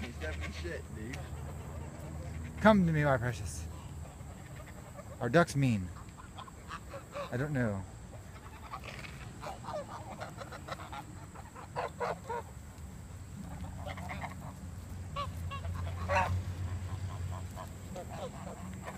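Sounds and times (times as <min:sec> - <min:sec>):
geese honking: 0:00.0 - 0:18.9.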